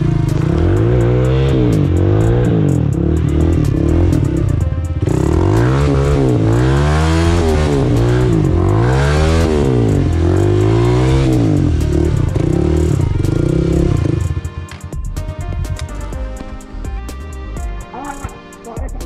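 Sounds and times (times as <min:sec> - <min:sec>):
dirt bike engine revving: 0:00.0 - 0:14.8.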